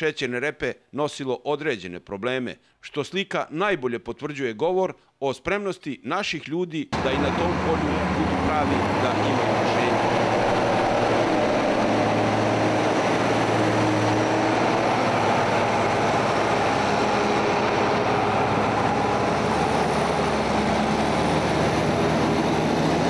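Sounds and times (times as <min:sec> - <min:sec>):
diesel engines droning: 0:07.0 - 0:23.0.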